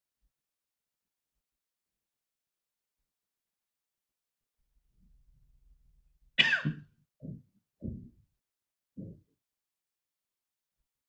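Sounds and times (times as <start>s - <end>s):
person coughing: 6.4s - 6.8s.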